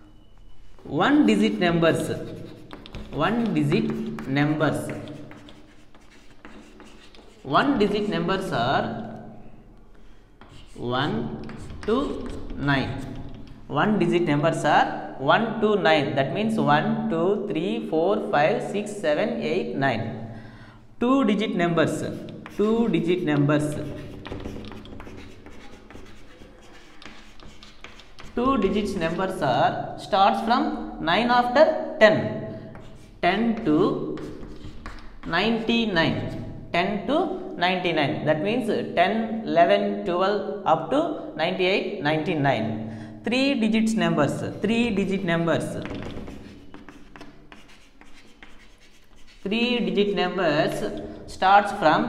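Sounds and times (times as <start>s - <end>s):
chalk scratching on chalkboard: 1.4s - 8.2s, 10.4s - 13.5s, 21.9s - 29.2s, 32.7s - 35.7s, 45.6s - 51.0s.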